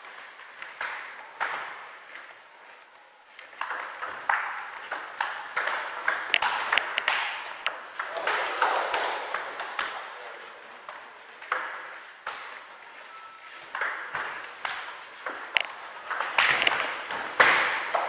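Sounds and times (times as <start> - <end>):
table tennis ball clicking: 3.6 - 8.1, 13.7 - 17.2.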